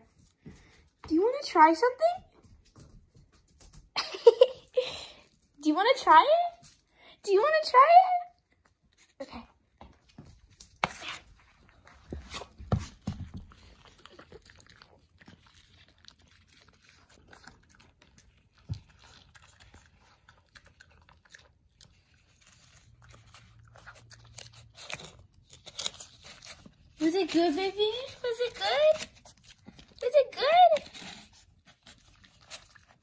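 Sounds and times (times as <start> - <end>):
puppy crunching and chewing: 8.3 - 33.0
puppy licking a plate: 10.8 - 24.3.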